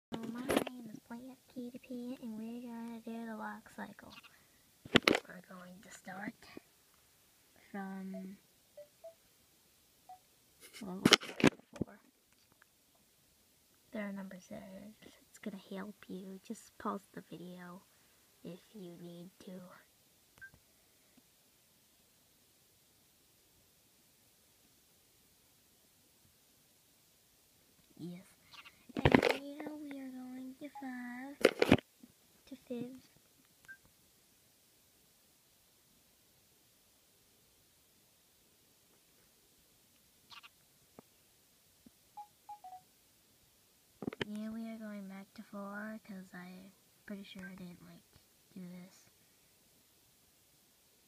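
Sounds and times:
short electronic beeps: 8.8 - 9.2, 42.2 - 42.8.

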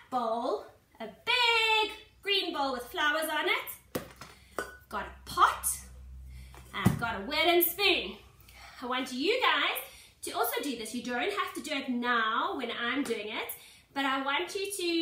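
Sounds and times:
woman talking: 0.0 - 3.8, 4.9 - 5.9, 6.7 - 8.2, 8.8 - 15.0.

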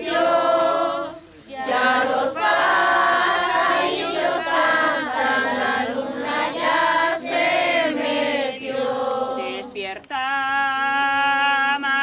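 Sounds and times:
children and women singing: 0.0 - 10.6.

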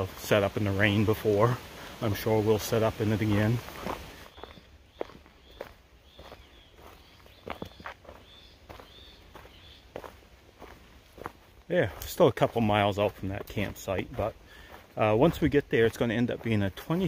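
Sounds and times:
footsteps on dirt and dry leaves: 0.0 - 17.0.

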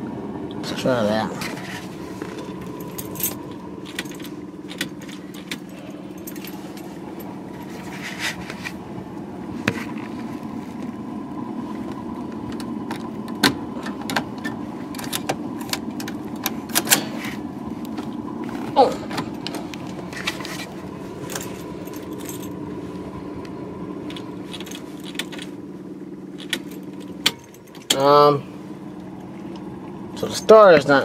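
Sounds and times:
steady low hum: 0.0 - 31.0
car keys jangling: 1.4 - 11.0, 12.0 - 29.7
ignition key clicks: 2.4 - 6.8, 11.9 - 17.2, 23.4 - 25.6, 26.4 - 28.2.

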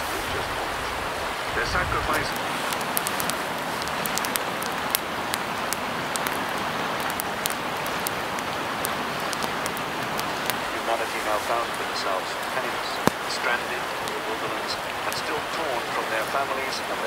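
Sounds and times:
campfire crackling and popping: 0.0 - 17.0.

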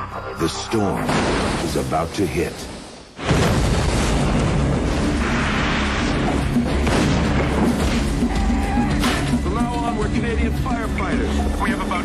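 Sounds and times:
explosion boom: 3.2 - 7.9
loud dramatic music: 4.4 - 12.0.

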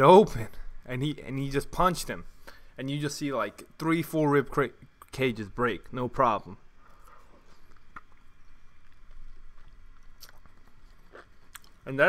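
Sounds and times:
person chewing wetly: 7.0 - 11.9.

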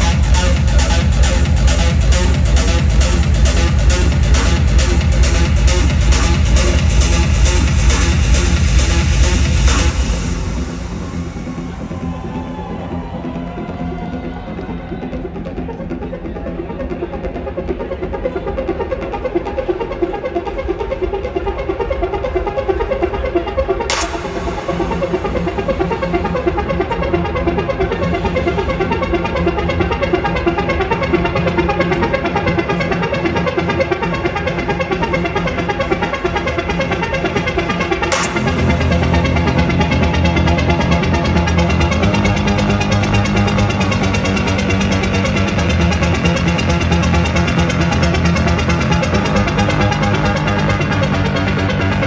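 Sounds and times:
deep bass line: 0.0 - 18.1, 23.9 - 52.0
loud trance dance music: 0.0 - 52.0.

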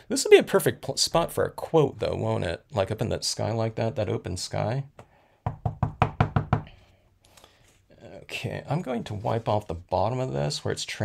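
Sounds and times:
rubber stamp knocking on ink pad: 5.4 - 6.7.

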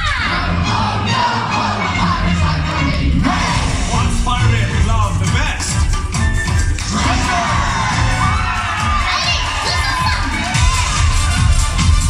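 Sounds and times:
children shouting and cheering: 0.0 - 2.2, 6.9 - 12.0.

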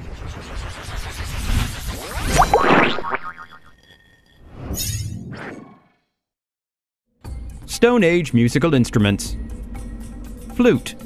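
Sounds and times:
noisy swell with rising pitch glides: 0.0 - 3.8.

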